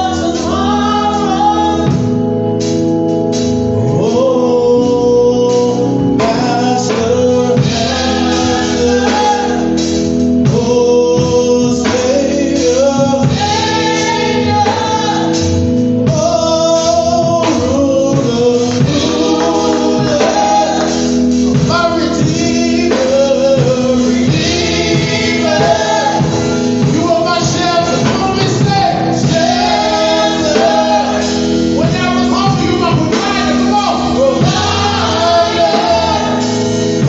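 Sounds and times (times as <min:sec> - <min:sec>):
guitar accompaniment: 0:00.0 - 0:37.0
men and women singing gospel: 0:00.0 - 0:37.0.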